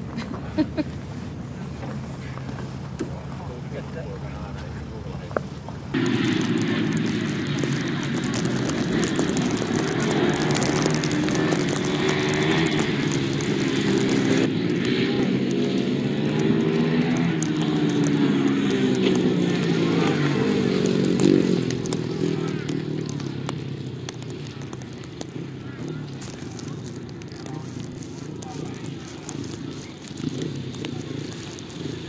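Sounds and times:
motorcycle engines revving: 0.0 - 32.0.

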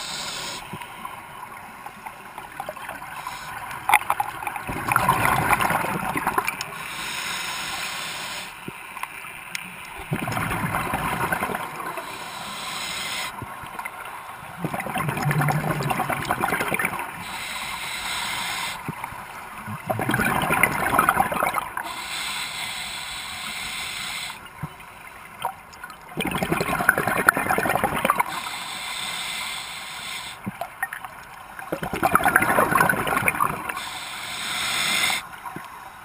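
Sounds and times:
regulator hiss on inhale: 0.0 - 0.9, 3.2 - 3.8, 6.7 - 8.6, 11.9 - 13.4, 17.1 - 19.0, 21.8 - 24.5, 28.2 - 30.5, 33.6 - 35.4
exhaust bubbles underwater: 4.6 - 6.6, 10.0 - 12.0, 14.5 - 17.2, 19.6 - 21.8, 26.2 - 28.3, 31.7 - 33.8.

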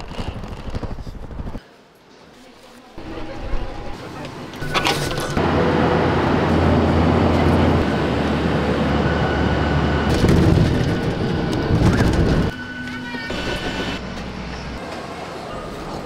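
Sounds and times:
jet airliner cabin drone: 3.2 - 16.0.

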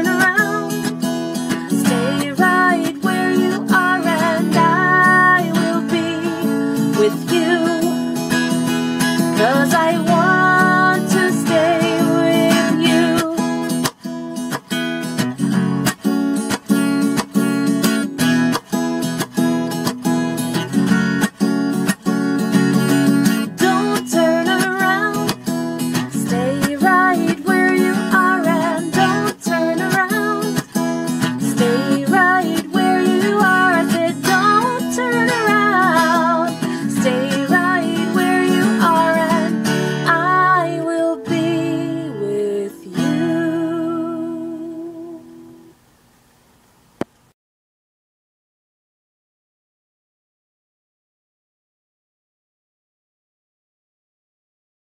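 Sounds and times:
person singing: 0.0 - 0.9, 1.5 - 8.2, 9.2 - 13.8, 23.4 - 25.4, 26.0 - 45.5
acoustic guitar strumming: 0.0 - 45.8.

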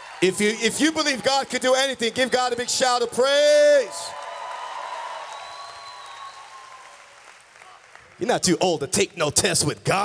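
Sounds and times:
congregation applauding: 0.0 - 9.1.

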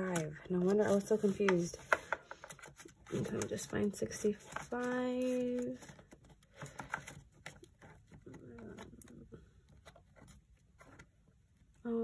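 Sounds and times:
paper envelopes rustling: 0.0 - 9.2.

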